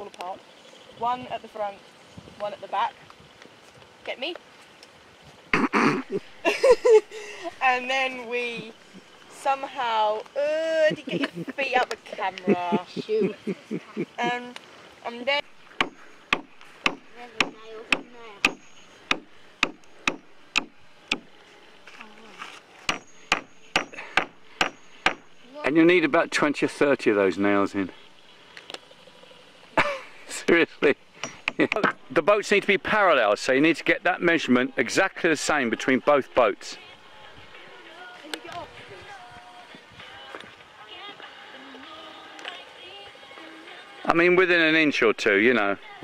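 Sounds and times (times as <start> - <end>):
hammer driving nails into wood: 15.8 - 21.3, 22.9 - 25.2
faint voices: 25.4 - 44.2.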